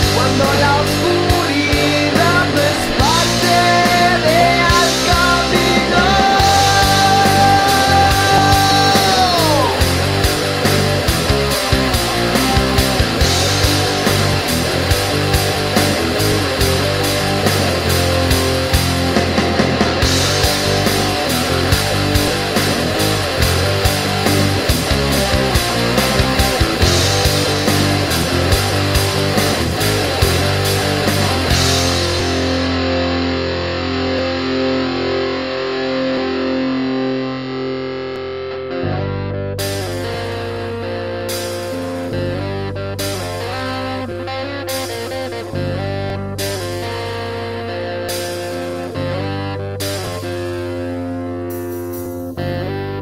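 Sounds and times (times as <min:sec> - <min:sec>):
drum beat with cymbal hits: 0:00.0 - 0:33.0, 0:41.2 - 0:42.1, 0:43.0 - 0:43.9, 0:46.4 - 0:47.2, 0:48.1 - 0:48.9, 0:49.8 - 0:50.5, 0:51.5 - 0:52.4
heavy electric guitars: 0:00.0 - 0:53.0.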